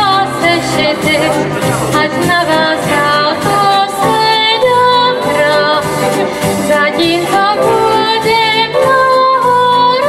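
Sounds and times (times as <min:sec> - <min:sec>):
keyboard accompaniment: 0:00.0 - 0:10.0.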